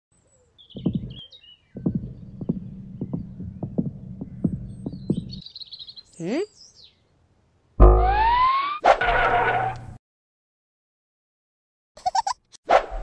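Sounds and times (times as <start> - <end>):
synthetic bird-like tweets: 0.7 - 3.7
low thumps: 0.8 - 5.4
steady low hum: 1.8 - 5.4.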